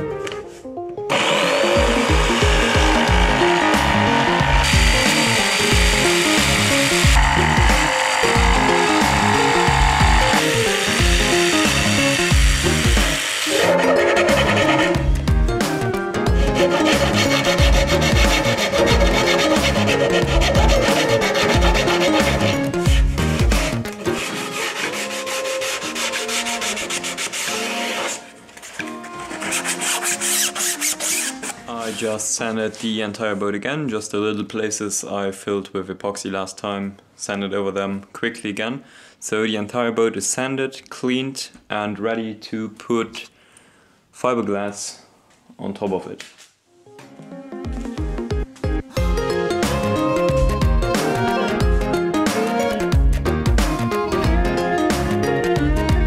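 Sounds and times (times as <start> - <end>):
jigsaw cutting plywood: 1.1 - 15.0, 16.3 - 28.2
hand file rasping: 1.1 - 15.1, 16.3 - 31.6
background music with bass beat: 14.3 - 24.0, 47.7 - 56.0.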